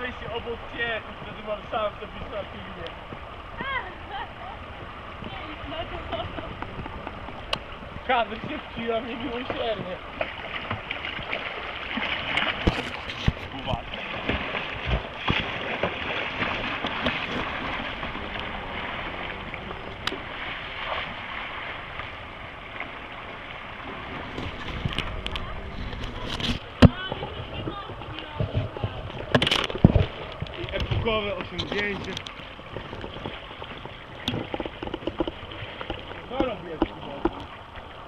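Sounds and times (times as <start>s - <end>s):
paddles splashing in water: 0.0s - 38.0s
rushing river water: 0.0s - 38.0s.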